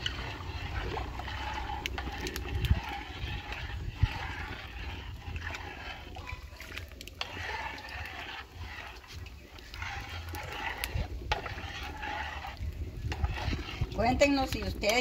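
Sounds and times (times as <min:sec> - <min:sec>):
liquid sloshing in pot: 0:00.0 - 0:15.0.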